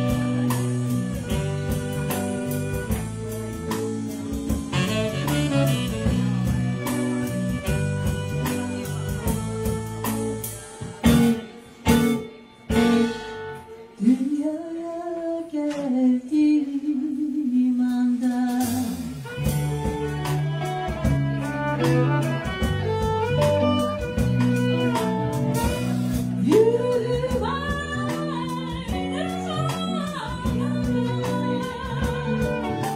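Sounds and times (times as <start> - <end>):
jazz blues band playing: 0.0 - 32.9
band accented hits: 4.4 - 10.4.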